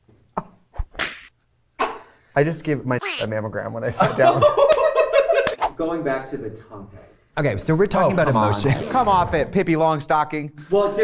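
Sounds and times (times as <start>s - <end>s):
sharp slap-like hits: 0.9s - 1.3s.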